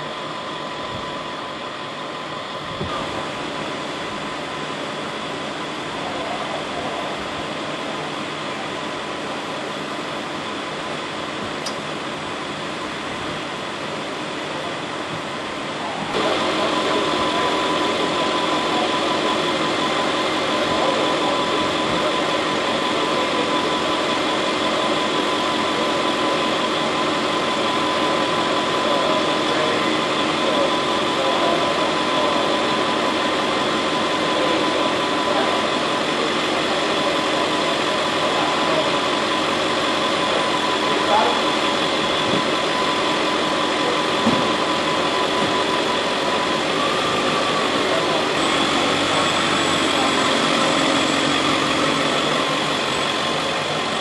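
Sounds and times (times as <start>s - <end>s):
ambulance engine idling: 0.0s - 54.0s.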